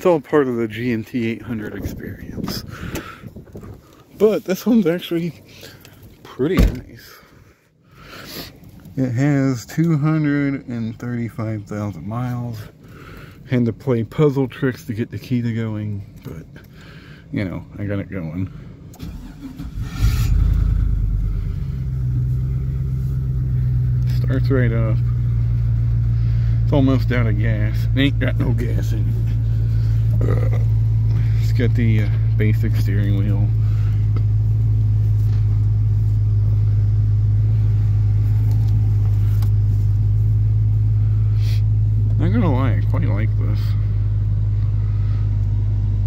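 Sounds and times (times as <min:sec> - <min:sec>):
car engine idling: 0:00.0 - 0:46.0
engine starter cranking: 0:18.9 - 0:21.3.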